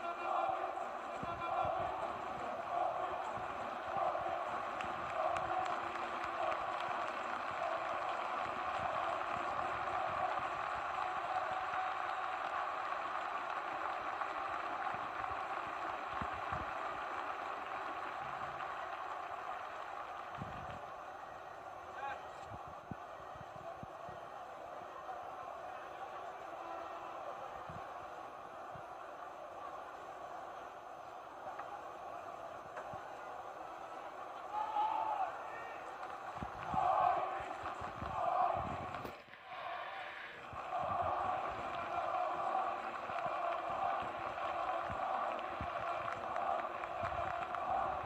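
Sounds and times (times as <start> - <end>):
crowd chanting: 0.0 - 48.0
crowd din of voices: 0.0 - 48.0.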